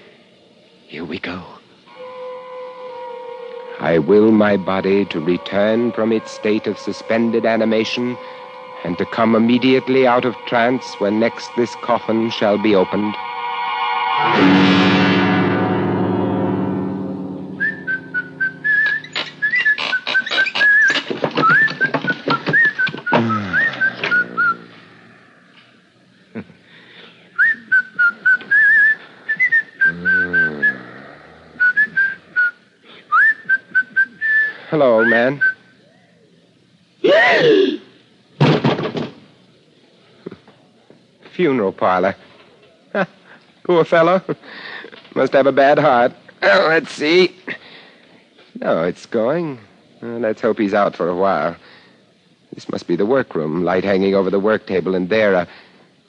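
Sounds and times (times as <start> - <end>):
music sting of sustained notes: 1.9 - 19.8
man whistling a tune: 17.6 - 24.7, 27.4 - 30.9, 31.6 - 35.7
knocks and clicks: 19.1 - 23.4
short voiced sounds: 23.1 - 25.0, 29.9 - 31.1, 37.0 - 37.9.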